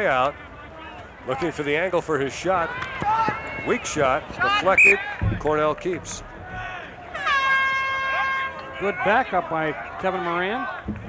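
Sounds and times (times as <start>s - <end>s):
horn steady note: 7.2s - 8.8s.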